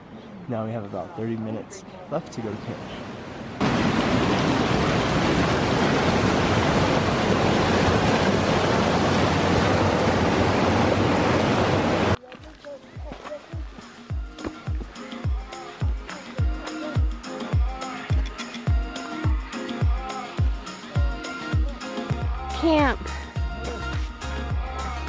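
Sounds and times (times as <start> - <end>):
mountain stream rushing: 2.3 - 17.2
background music with bass beat: 13.0 - 25.0.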